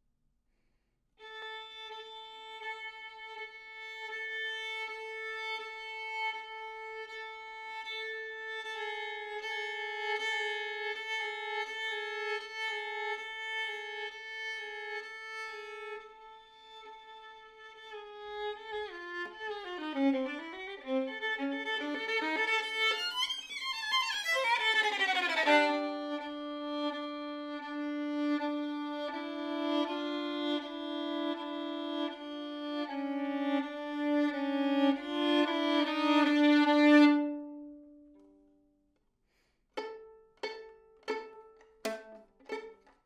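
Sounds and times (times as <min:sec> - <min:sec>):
bowed violin note: 0:01.2 - 0:38.4, 0:39.8 - 0:42.9.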